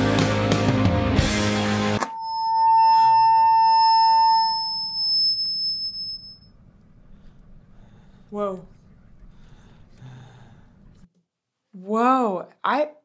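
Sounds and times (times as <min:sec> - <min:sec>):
heavy rock song: 0:00.0 - 0:02.0
high electronic tone: 0:02.0 - 0:06.5.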